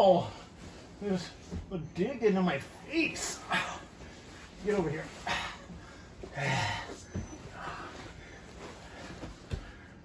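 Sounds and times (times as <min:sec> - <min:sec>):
bodies rubbing on foam mats: 0:00.5 - 0:10.0.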